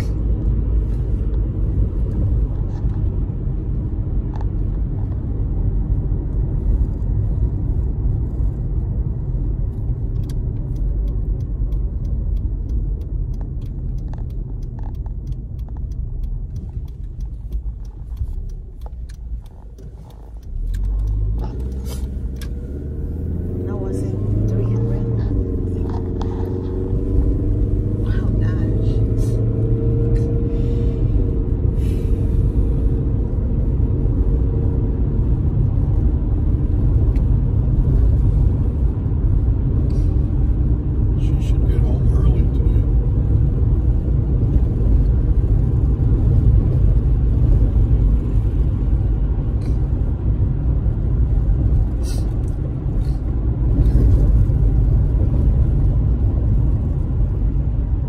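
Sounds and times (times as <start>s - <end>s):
car engine: 0.0s - 58.0s.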